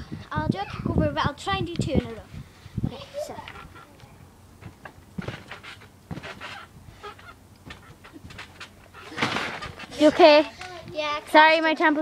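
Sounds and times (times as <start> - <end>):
soft thuds on trampoline: 4.6 - 10.4
rustling knocks: 4.6 - 10.8
crash into trampoline: 5.2 - 6.7, 7.6 - 10.1.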